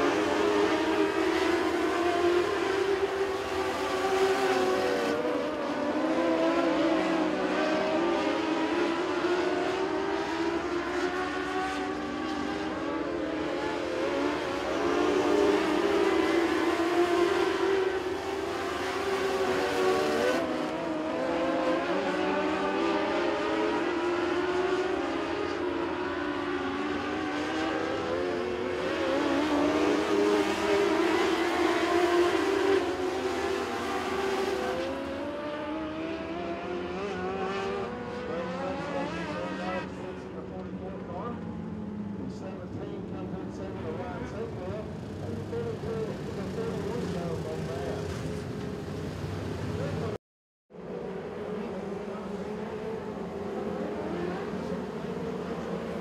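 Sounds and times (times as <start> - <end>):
race car engines droning: 0.0 - 56.0.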